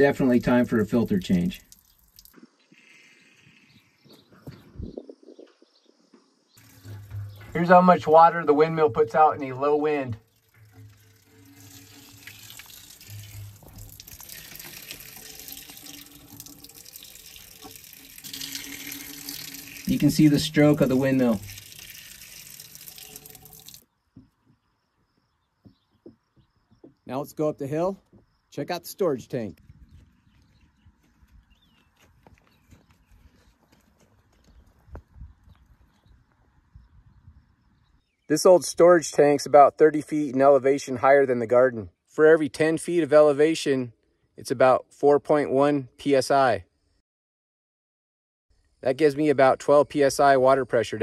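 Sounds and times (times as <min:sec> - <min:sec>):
water splashing onto rock: 0:01.2 - 0:02.4, 0:10.3 - 0:23.8
footsteps on gravel: 0:29.6 - 0:36.1.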